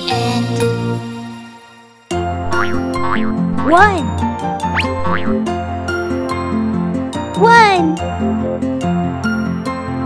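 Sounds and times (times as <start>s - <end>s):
cartoon music: 2.4s - 5.4s
springy boing: 2.5s - 3.7s, 4.8s - 5.4s.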